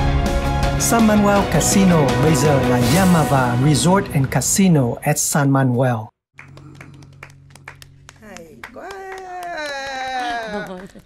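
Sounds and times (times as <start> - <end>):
people clapping: 6.3 - 11.0.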